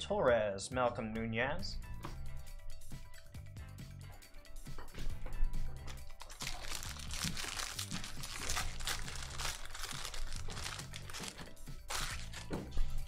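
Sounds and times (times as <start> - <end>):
background music: 0.0 - 13.0
foil pack crinkling and tearing: 6.1 - 12.6.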